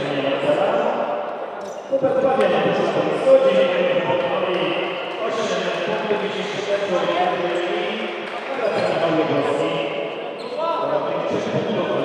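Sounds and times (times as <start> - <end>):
voices echoing in hall: 0.0 - 12.0.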